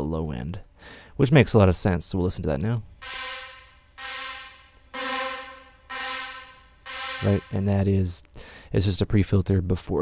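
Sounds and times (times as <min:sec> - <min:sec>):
synth chord stabs with reverb: 0:03.0 - 0:07.7.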